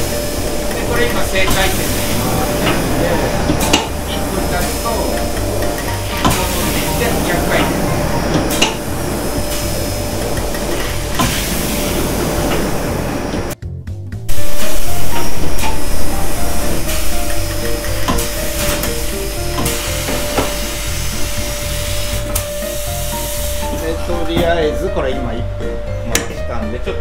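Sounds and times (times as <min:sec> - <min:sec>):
polishing machine grinding: 0:00.0 - 0:13.6, 0:14.3 - 0:24.0.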